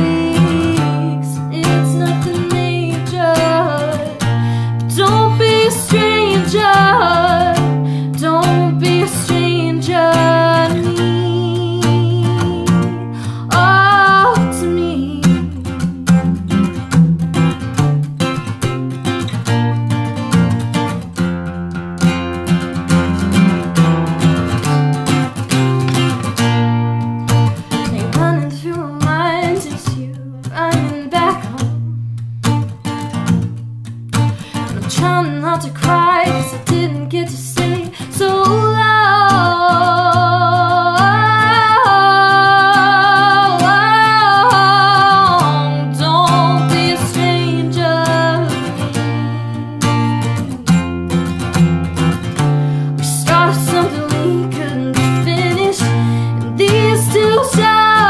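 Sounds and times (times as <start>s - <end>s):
woman singing: 0.0s - 16.8s, 27.3s - 31.8s, 34.4s - 51.4s, 52.3s - 58.0s
acoustic guitar: 0.0s - 58.0s.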